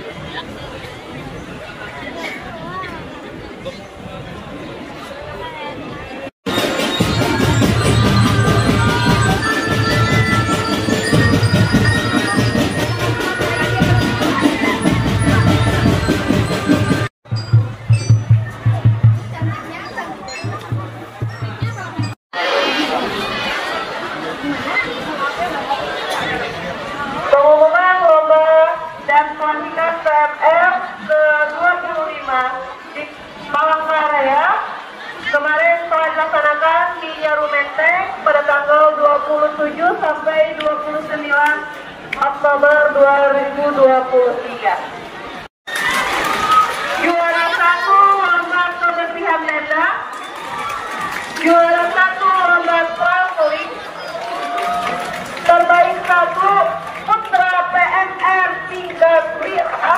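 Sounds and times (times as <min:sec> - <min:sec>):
background chatter: 0:00.0 - 0:59.9
woman speaking into a microphone: 0:47.0 - 0:50.1, 0:51.4 - 0:53.8, 0:55.4 - 0:59.9.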